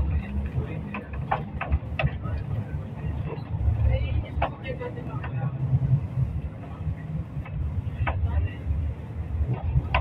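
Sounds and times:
vehicle engine and road rumble: 0:00.0 - 0:10.0.

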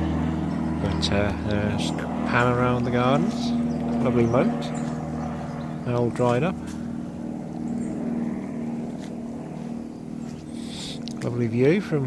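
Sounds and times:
motor hum: 0:00.0 - 0:12.0.

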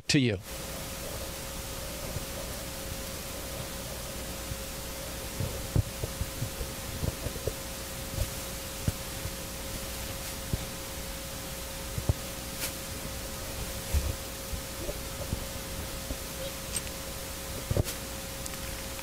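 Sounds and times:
microphone hiss and hum: 0:00.0 - 0:19.0.

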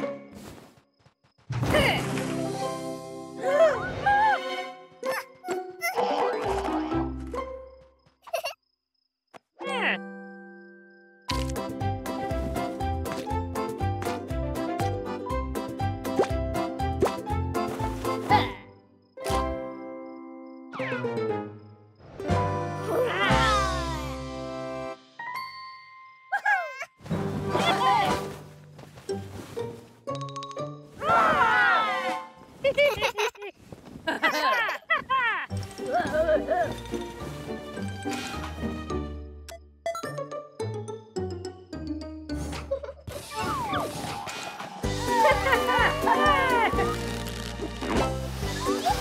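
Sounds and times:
children's cartoon music: 0:01.8 - 0:08.6, 0:09.6 - 0:28.4, 0:29.0 - 0:32.4, 0:35.5 - 0:44.2, 0:44.8 - 0:49.0
cartoon character wavering cry: 0:22.9 - 0:24.0, 0:26.4 - 0:26.9.

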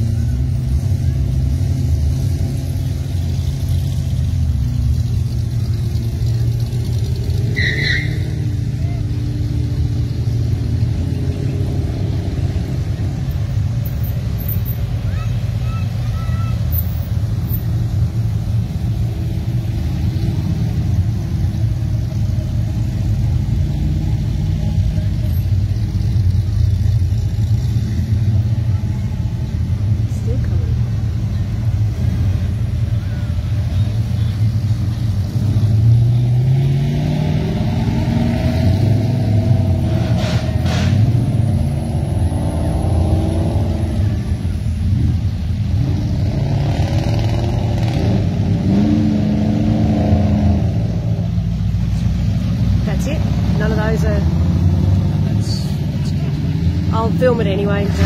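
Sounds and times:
car engine revving: 0:00.0 - 0:58.0
car engines rumbling: 0:00.0 - 0:58.0.

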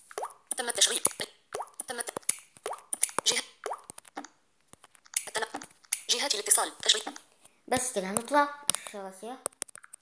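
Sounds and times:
fast synthetic voice speaking: 0:00.5 - 0:02.2, 0:05.3 - 0:07.2.

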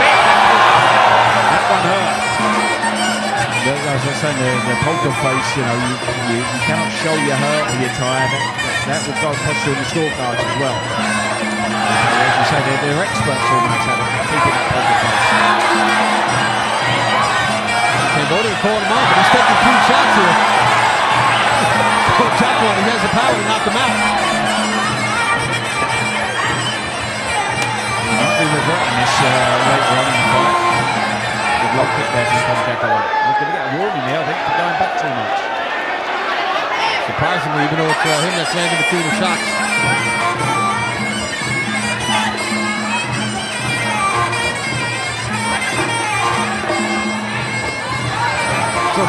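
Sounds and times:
reedy oboe tone: 0:00.0 - 0:35.2, 0:37.2 - 0:49.0
crowd: 0:00.0 - 0:49.0.

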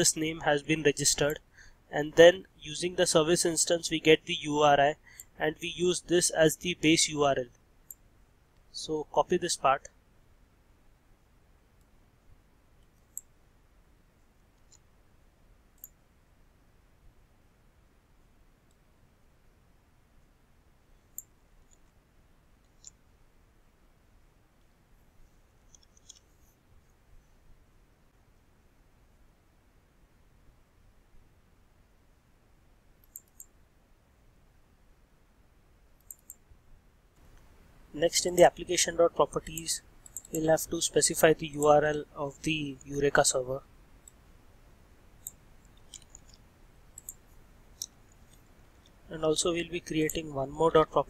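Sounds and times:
low background hiss: 0:00.0 - 0:51.0
computer clicks: 0:33.0 - 0:33.5, 0:36.0 - 0:36.4, 0:39.5 - 0:40.8, 0:45.2 - 0:49.0.

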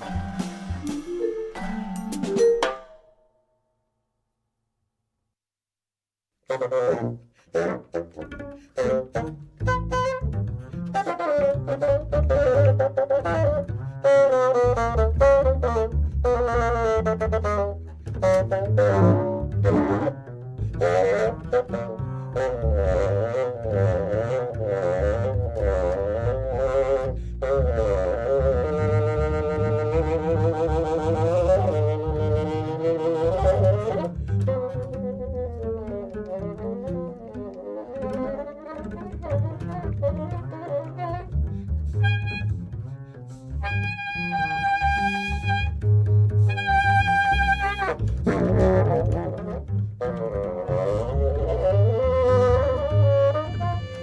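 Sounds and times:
low bowed strings and double bass: 0:06.5 - 0:54.0.

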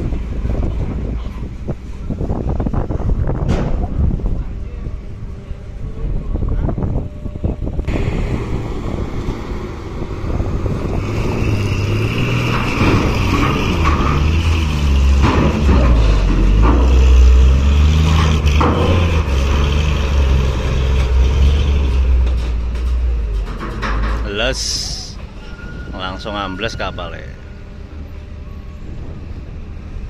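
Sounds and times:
truck engine pulling under load: 0:00.0 - 0:26.2
knocks on steel ramp: 0:15.1 - 0:17.1, 0:18.0 - 0:19.6.

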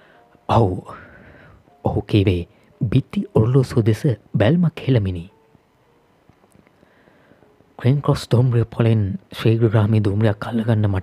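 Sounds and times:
man reading aloud: 0:00.5 - 0:01.2, 0:01.8 - 0:05.3, 0:07.8 - 0:11.0.

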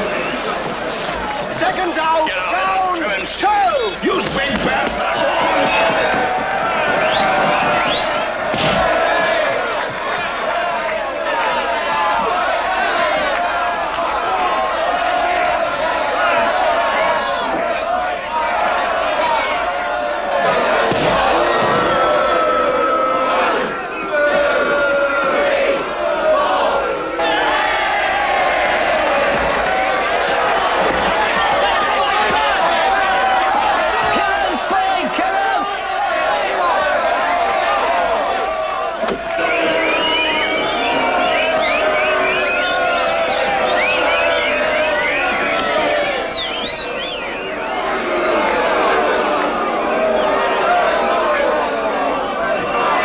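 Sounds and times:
crowd shouting and cheering: 0:00.0 - 0:53.0.

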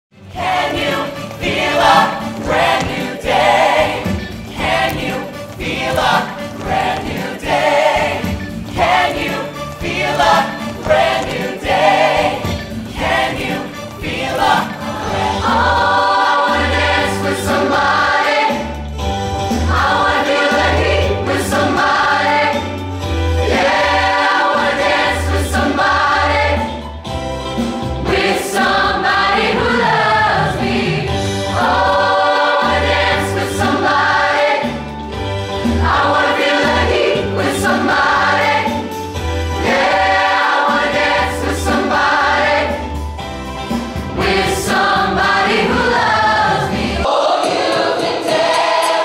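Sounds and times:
mixed-voice choir singing loudly: 0:00.2 - 0:18.9, 0:19.5 - 0:26.8, 0:28.0 - 0:43.0, 0:43.7 - 0:49.0.

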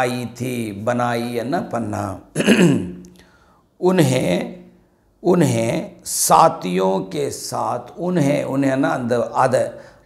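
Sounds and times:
man clearing throat: 0:02.4 - 0:03.0.

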